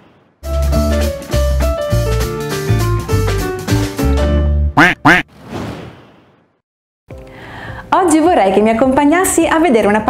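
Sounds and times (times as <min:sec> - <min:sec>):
cartoon duck quacks: 0:04.8 - 0:05.3.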